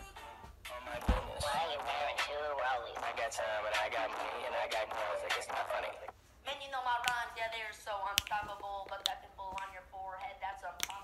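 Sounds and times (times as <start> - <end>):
background music: 0.0 - 6.1
voice: 0.9 - 11.0
dull thump: 1.0 - 1.5.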